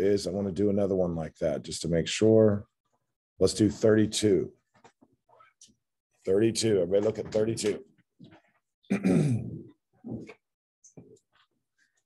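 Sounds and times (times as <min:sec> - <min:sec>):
man clearing his throat: 0:08.9 - 0:09.8.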